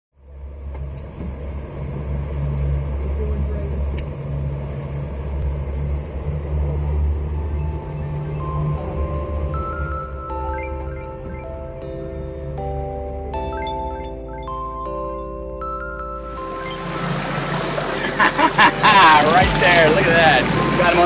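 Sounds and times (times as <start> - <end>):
boat engine droning: 0.2 - 21.0
music with mallet percussion: 7.3 - 21.0.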